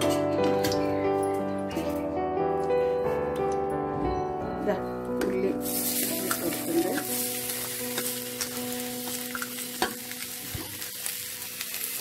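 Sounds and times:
onions sizzling in a pot: 0:05.3 - 0:12.0.

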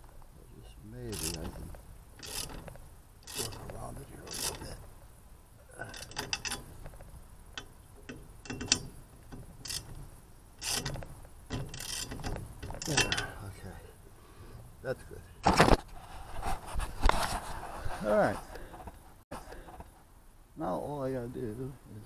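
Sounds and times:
ratchet wrench clicking: 0:01.1 - 0:01.6, 0:02.2 - 0:04.8, 0:05.8 - 0:06.8, 0:07.6 - 0:13.3.

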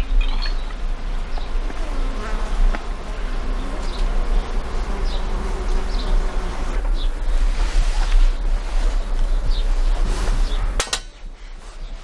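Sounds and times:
faint high chirps: 0:00.0 - 0:00.8.

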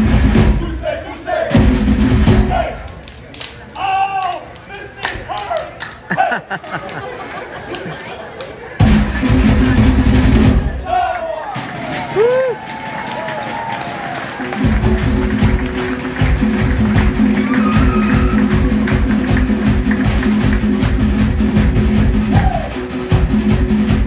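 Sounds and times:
fast drum music: 0:00.0 - 0:00.8, 0:01.5 - 0:02.7, 0:08.8 - 0:10.8, 0:13.4 - 0:24.0.

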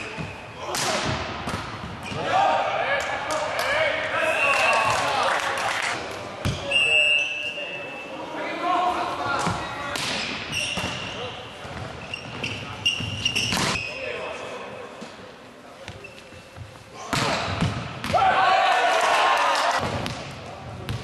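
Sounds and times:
players shouting: 0:18.1 - 0:19.8.

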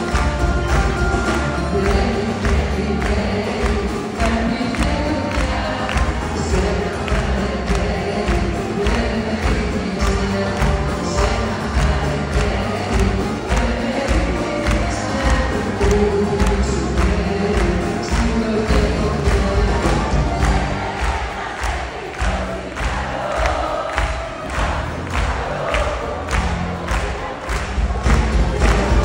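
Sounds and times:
audience singing along: 0:00.0 - 0:29.0
live band playing: 0:00.0 - 0:29.0.

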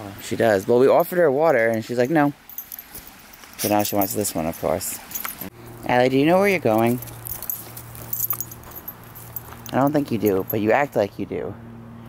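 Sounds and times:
harness metal jingles: 0:00.9 - 0:10.9.

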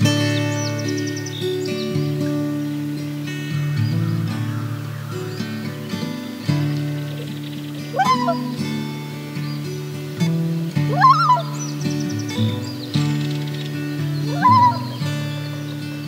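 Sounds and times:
acoustic guitar music: 0:00.0 - 0:16.0
loon calls: 0:07.1 - 0:08.7, 0:10.9 - 0:11.7, 0:14.2 - 0:15.1.

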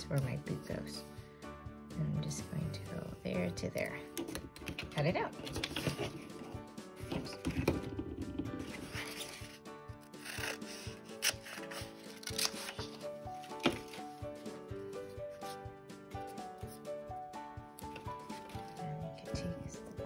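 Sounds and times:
background music: 0:00.0 - 0:20.0
scissors cutting paper: 0:08.6 - 0:14.2.

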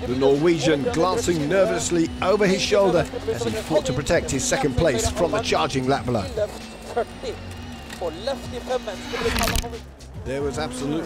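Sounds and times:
rally car engine: 0:00.0 - 0:11.0.

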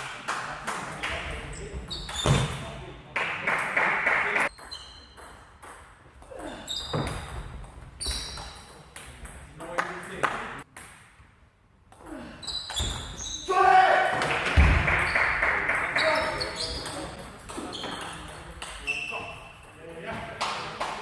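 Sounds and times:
loud shout: 0:13.5 - 0:14.3.

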